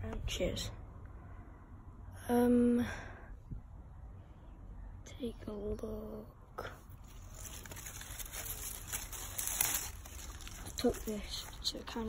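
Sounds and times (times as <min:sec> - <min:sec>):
leafy branches rustling: 0:06.9 - 0:12.0
faint clicks of branches: 0:07.0 - 0:11.8.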